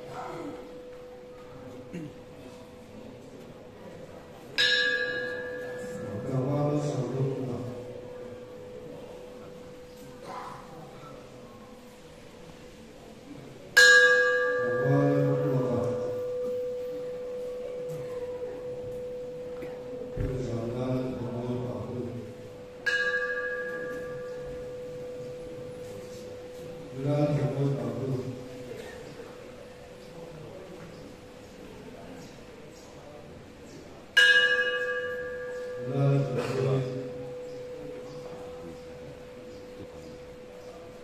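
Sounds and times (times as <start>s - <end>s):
steady hum-like tone: 0.0s - 31.9s
hanging bell ringing: 4.6s - 8.8s, 13.8s - 28.8s, 34.2s - 41.0s.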